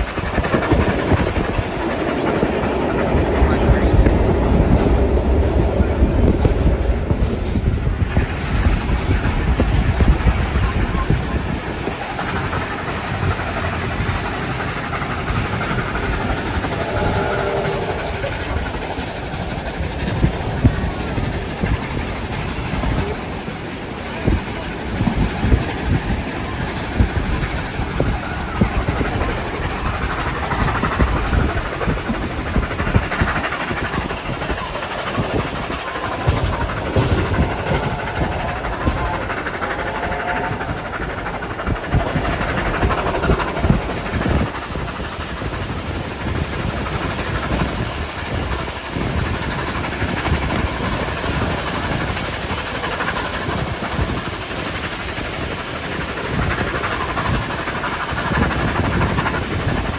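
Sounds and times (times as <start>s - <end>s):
low surges: 0.0s - 10.2s, 14.8s - 21.1s
rush of track and wind noise: 0.0s - 59.9s
train wheels clattering over rails: 0.0s - 59.9s.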